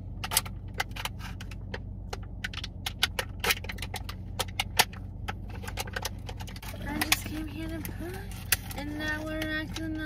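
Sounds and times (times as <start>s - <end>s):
car hum: 0.0s - 10.0s
plastic makeup items clicking: 0.2s - 10.0s.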